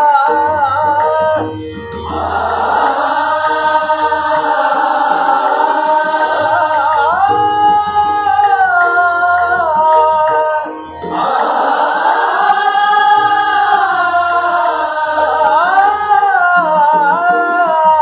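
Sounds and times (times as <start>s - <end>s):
group singing classical vocal music: 0.0s - 18.0s
tabla playing: 0.0s - 18.0s.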